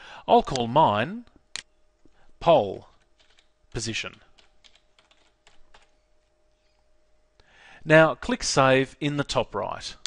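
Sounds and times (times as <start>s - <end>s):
computer keyboard typing: 2.9s - 3.5s, 4.3s - 6.0s.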